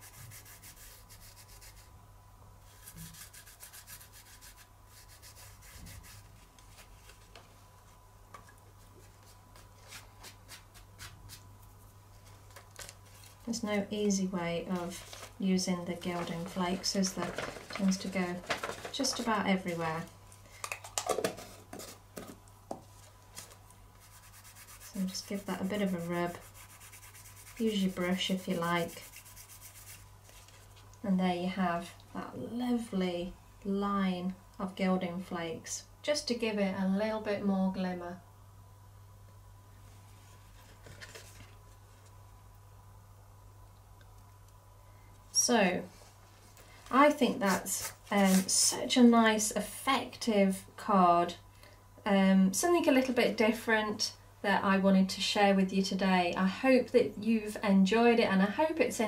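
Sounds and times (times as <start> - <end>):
fingertips scratching paper: 0.0 - 1.9, 2.7 - 6.3, 24.0 - 30.0.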